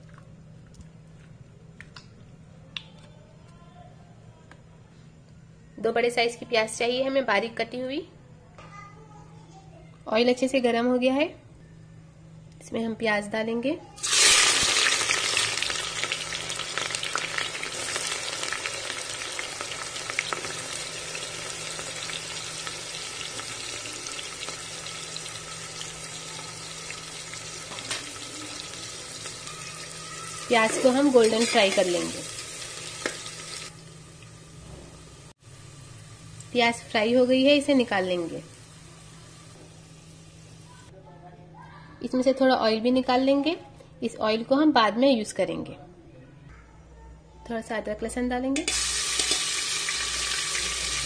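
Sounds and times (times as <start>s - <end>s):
onions sizzling in hot oil: 14.0s - 40.7s, 48.7s - 51.0s.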